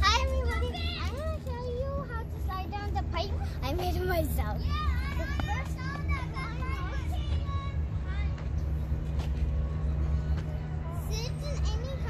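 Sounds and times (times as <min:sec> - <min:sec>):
children calling and chattering: 0:00.0 - 0:12.0.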